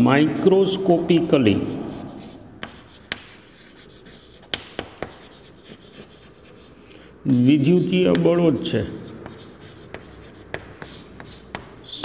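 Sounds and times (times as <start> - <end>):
chalk scratching on blackboard: 0.0 - 11.8
chalk tapping on blackboard: 1.6 - 6.7, 7.6 - 11.8.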